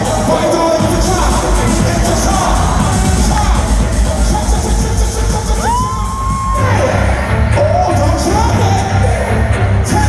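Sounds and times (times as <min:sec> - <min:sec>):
live concert music with heavy bass: 0:00.0 - 0:10.0
audience cheering: 0:05.4 - 0:07.1.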